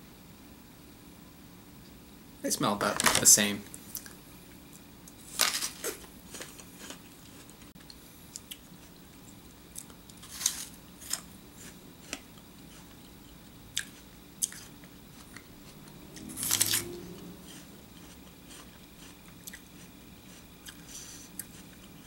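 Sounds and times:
apple biting and chewing: 5.5s - 7.7s, 9.7s - 22.0s.

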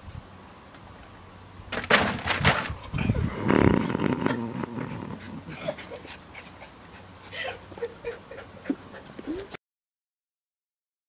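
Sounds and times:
dog growling: 3.0s - 6.1s.

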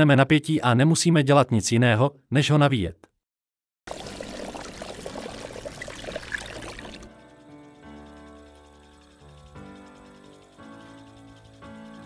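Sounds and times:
water trickling in a bucket: 3.9s - 12.0s
fishing line winding onto reel: 5.4s - 12.0s.

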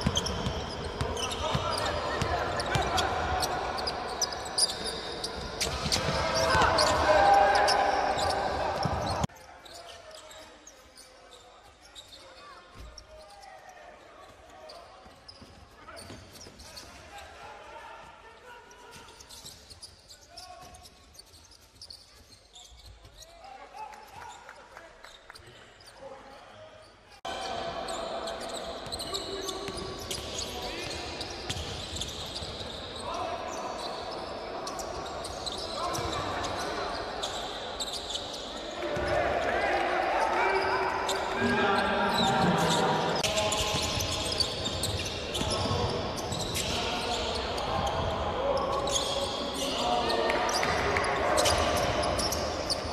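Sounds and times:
players calling out: 0.1s - 9.3s.

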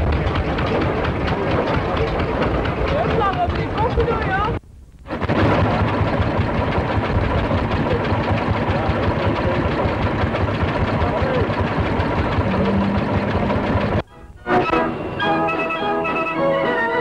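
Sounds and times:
engine running: 0.0s - 17.0s
voices: 0.6s - 4.6s, 7.6s - 13.5s
blowlamp roaring: 9.9s - 15.3s.

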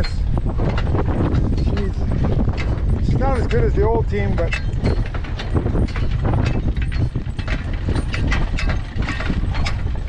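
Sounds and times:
cart and harness rattling: 0.0s - 10.0s
continuous low rumble: 0.0s - 10.0s.

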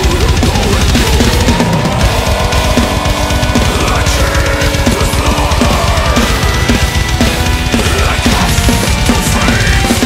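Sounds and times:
distorted guitars: 0.0s - 10.0s
heavy metal song: 0.0s - 10.0s.

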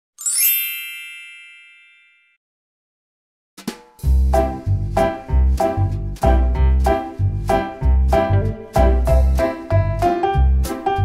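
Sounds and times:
bright chime ding: 0.2s - 2.4s.

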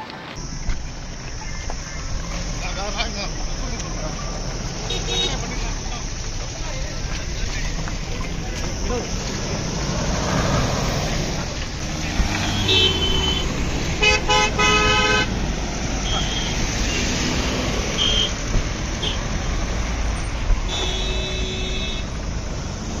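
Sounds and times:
cars driving past: 0.0s - 23.0s
car horns honking: 0.4s - 22.4s.

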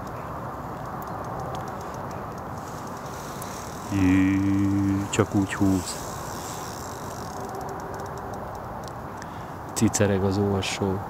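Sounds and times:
faint high ticks: 0.0s - 9.8s
outdoor background noise: 0.0s - 11.0s.

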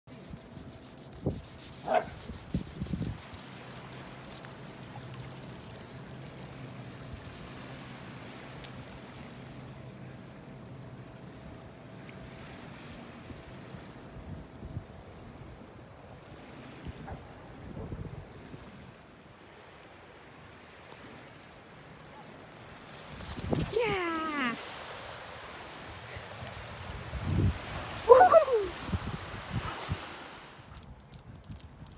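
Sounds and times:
steady low hum: 0.1s - 17.6s
wind on microphone: 0.2s - 3.4s, 13.2s - 19.0s, 23.1s - 24.6s, 26.1s - 31.9s
faint lapping water: 3.2s - 23.0s, 23.6s - 30.9s
person saying yeah: 23.7s - 24.6s.

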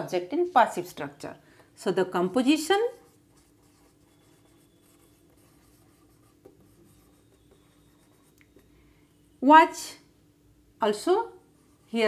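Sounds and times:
marker pen writing on whiteboard: 2.8s - 8.7s.

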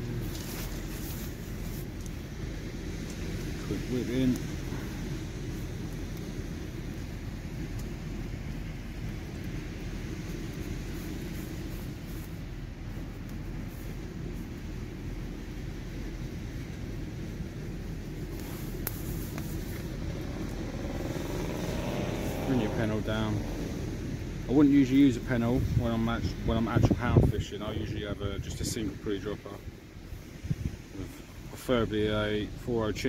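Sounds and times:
steady low rumble: 0.0s - 33.0s.

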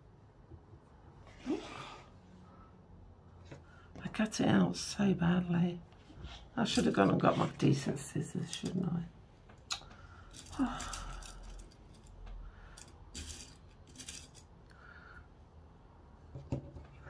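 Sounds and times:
metallic clicks of pins in tin: 9.7s - 14.5s.

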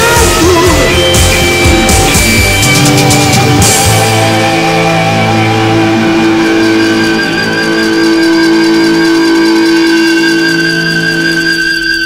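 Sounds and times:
heavy rock sustained note: 0.0s - 11.4s.

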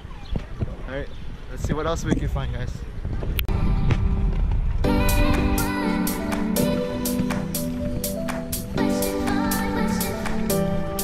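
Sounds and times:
wind buffeting microphone: 0.0s - 11.0s
background music with a beat: 4.8s - 11.0s.

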